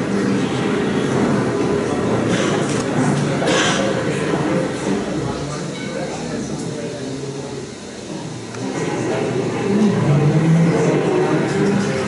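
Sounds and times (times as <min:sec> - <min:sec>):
steady low tone over loudspeaker: 0:00.0 - 0:12.0.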